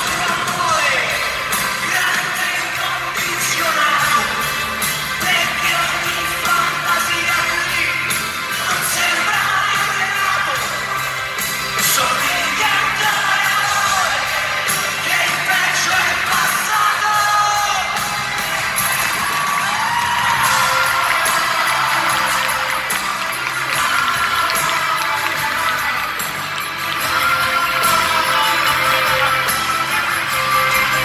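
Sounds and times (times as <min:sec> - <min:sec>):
person singing: 0:00.0 - 0:11.2, 0:11.8 - 0:18.6, 0:19.8 - 0:31.0
crowd cheering: 0:00.0 - 0:31.0
live pop-rock band playing: 0:00.0 - 0:31.0.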